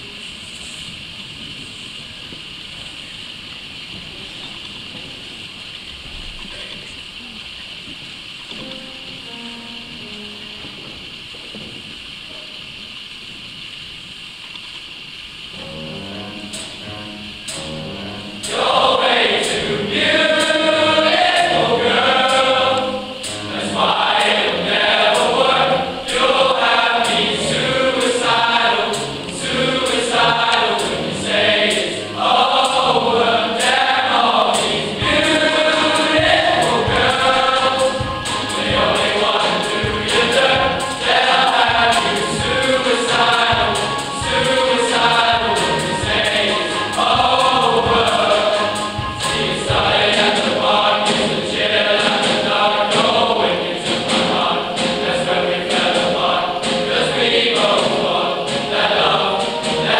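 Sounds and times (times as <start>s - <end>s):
boys choir singing: 15.6s - 59.9s.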